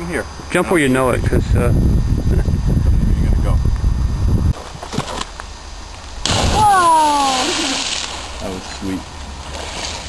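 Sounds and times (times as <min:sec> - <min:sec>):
splash into water: 0:06.2 - 0:08.4
person calling out: 0:06.6 - 0:07.6.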